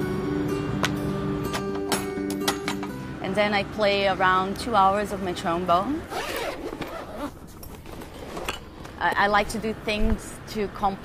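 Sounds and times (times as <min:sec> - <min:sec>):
zipper of bag pulled open: 0:06.1 - 0:08.6.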